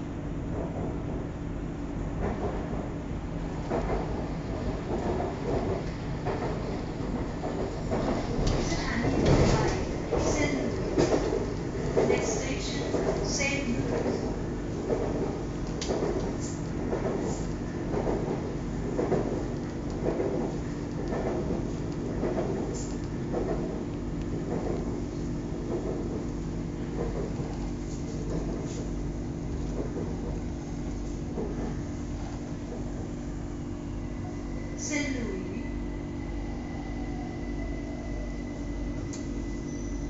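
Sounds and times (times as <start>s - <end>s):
electric train hum: 0.0s - 40.0s.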